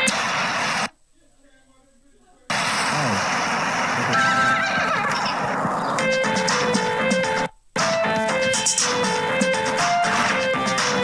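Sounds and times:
loud noisy sound effect: 2.5 - 6.8
game music of repeated notes: 6.0 - 11.0.

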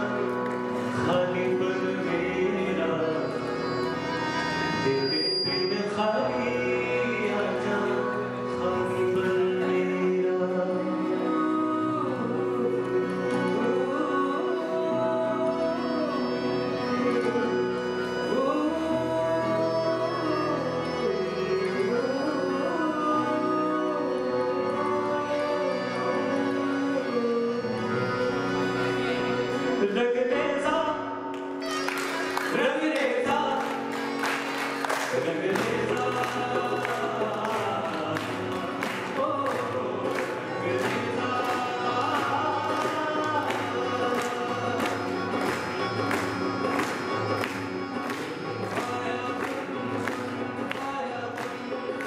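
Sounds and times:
man singing ornamented phrases: 0.0 - 4.0, 4.6 - 31.2, 35.1 - 46.0
acoustic guitar: 0.0 - 52.0
keyboard and harmonium chords: 0.0 - 52.0.

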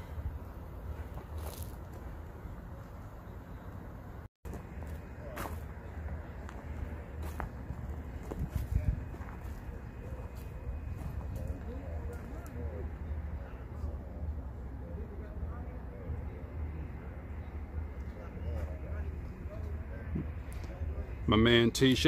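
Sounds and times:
faint distant voices: 4.6 - 22.0.

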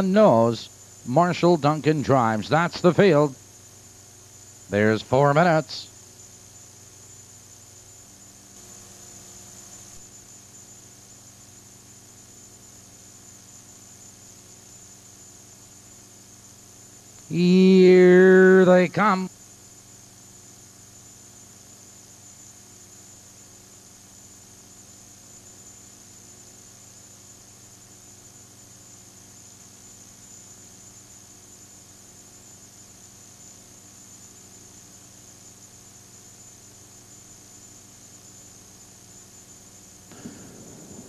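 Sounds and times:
steady hiss and hum: 0.0 - 41.0.

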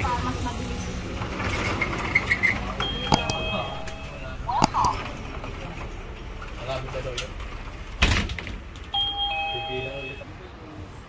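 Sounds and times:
two-tone door chime: 2.9 - 4.3, 9.0 - 10.2.

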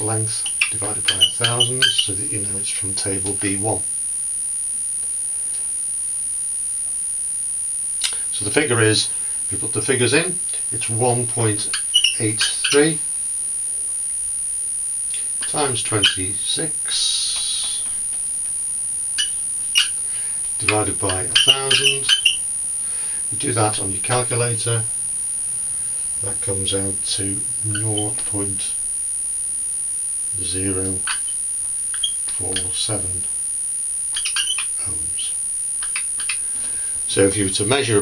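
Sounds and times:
high-pitched whine: 0.0 - 38.0
marker squeaking on whiteboard: 0.3 - 2.2, 11.6 - 13.0, 15.4 - 16.3, 19.2 - 20.0, 20.6 - 22.4, 27.7 - 28.3, 31.0 - 32.8, 34.1 - 34.8, 35.8 - 36.5.

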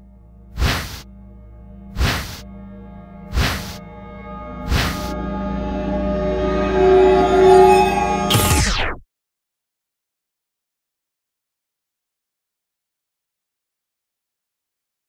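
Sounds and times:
low drone: 0.0 - 9.0
whoosh effects: 0.6 - 1.1, 1.9 - 2.5, 3.3 - 3.8, 4.6 - 5.2
synth chord: 1.1 - 9.0
falling sweep: 2.0 - 2.5, 3.3 - 3.8, 4.6 - 5.2.

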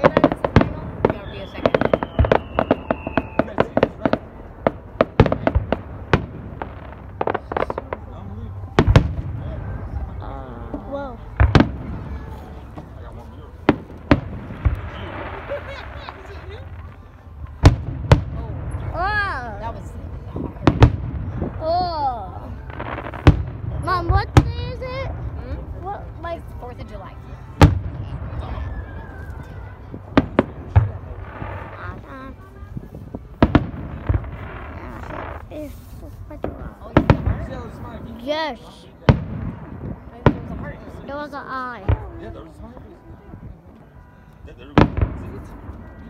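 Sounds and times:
fireworks bursting: 0.0 - 42.6, 44.7 - 46.0.

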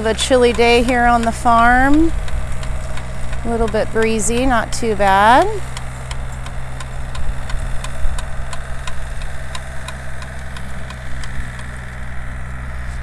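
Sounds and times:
rototiller light ticking: 0.0 - 13.0
tractor engine humming: 0.0 - 13.0.

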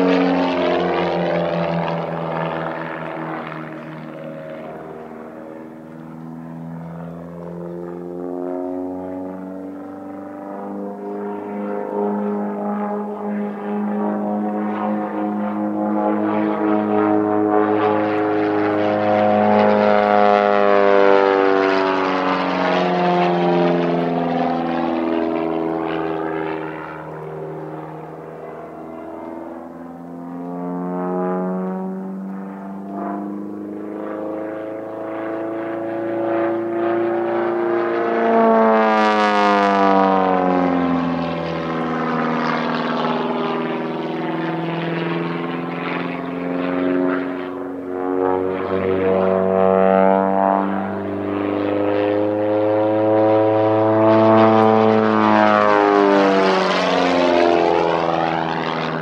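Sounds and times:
propeller plane engine overhead: 0.0 - 59.0.

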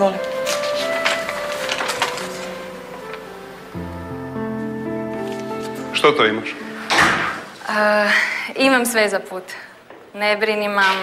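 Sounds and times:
paper crinkling: 0.0 - 3.5
soft sustained music notes: 0.0 - 7.7.

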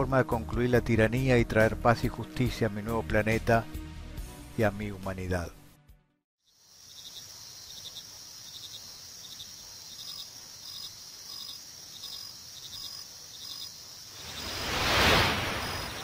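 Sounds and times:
crickets chirping: 6.5 - 16.0
high insect buzz: 6.5 - 16.0.

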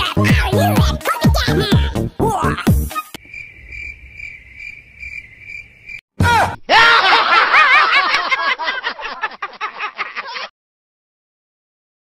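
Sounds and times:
crickets chirping: 3.2 - 6.0.

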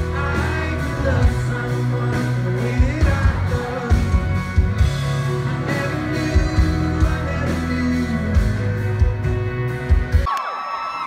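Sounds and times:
live band playing loud music: 0.0 - 10.3
crowd cheering: 10.0 - 11.0.

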